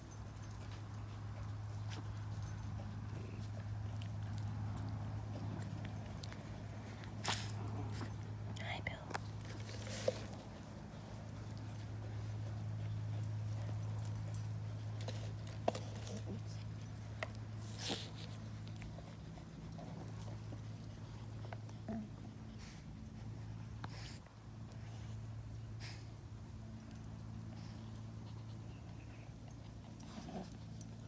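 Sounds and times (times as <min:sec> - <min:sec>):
faint dog sounds: 0:00.0 - 0:31.0
steady low hum: 0:00.0 - 0:31.0.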